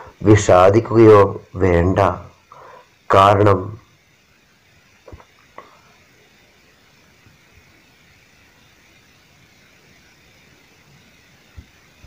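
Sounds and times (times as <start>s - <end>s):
room background hiss: 0.0s - 12.0s.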